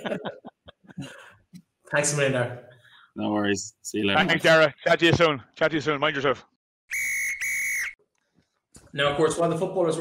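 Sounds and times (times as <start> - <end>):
whistle blasts: 6.9 - 8.0.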